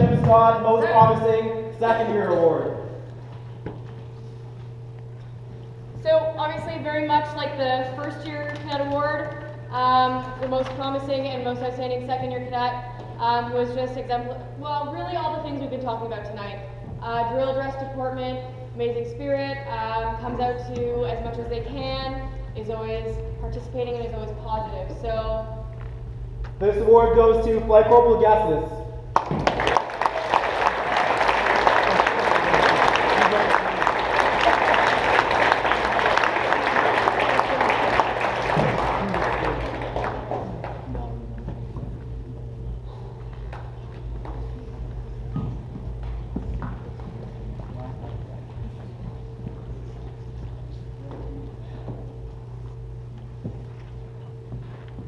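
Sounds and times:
faint steady hum: 0:00.0 - 0:55.0
audience applauding: 0:29.1 - 0:41.0.

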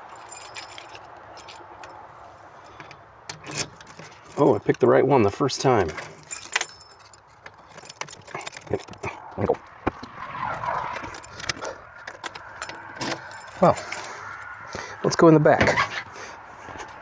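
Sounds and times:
keys jangling: 0:00.0 - 0:04.8, 0:05.8 - 0:09.3, 0:11.0 - 0:14.5.

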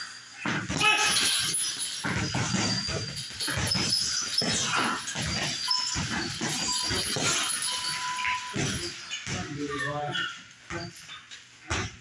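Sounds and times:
short high squeaks: 0:00.0 - 0:11.4
punches thudding on punching bags: 0:00.4 - 0:09.7, 0:11.6 - 0:12.0.

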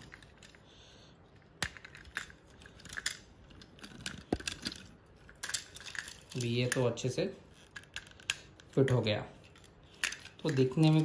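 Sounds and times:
plastic parts being handled: 0:01.3 - 0:06.9.

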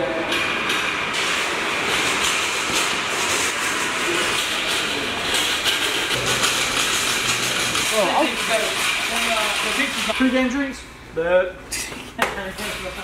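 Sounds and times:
wheels and basket rattling: 0:01.1 - 0:10.4
shopping cart rolling on concrete: 0:01.1 - 0:10.7.

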